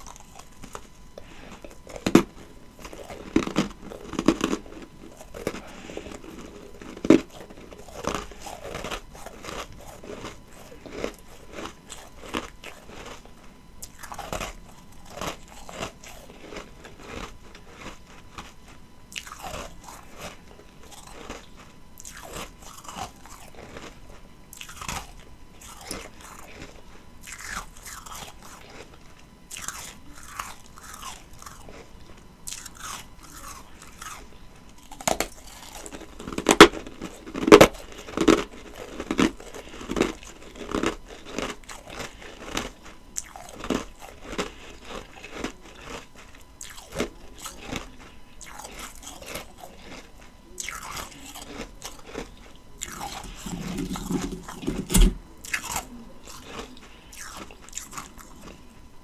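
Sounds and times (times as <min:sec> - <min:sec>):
person crunching ice: 0:00.0 - 0:24.0, 0:34.9 - 0:58.6.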